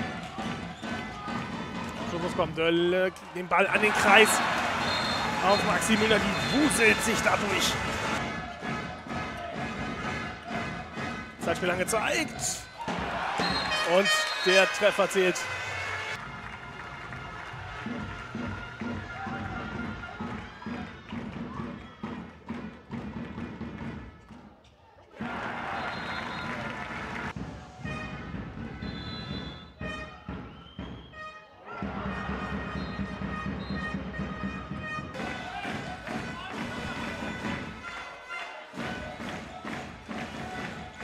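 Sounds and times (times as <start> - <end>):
music: 0.0 - 41.0.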